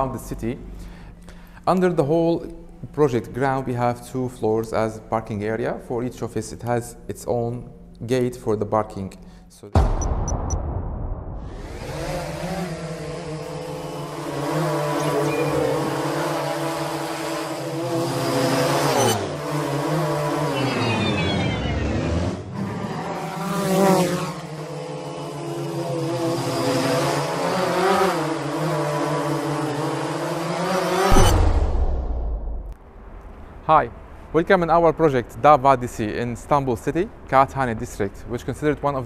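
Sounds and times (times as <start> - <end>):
whoosh: 9.8 - 12.3, 31.1 - 33.1
drone motors whirring: 11.4 - 23.6.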